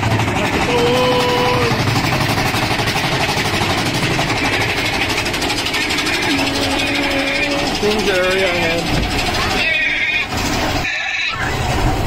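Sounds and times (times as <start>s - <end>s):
roller coaster rumbling on track: 0.0s - 12.0s.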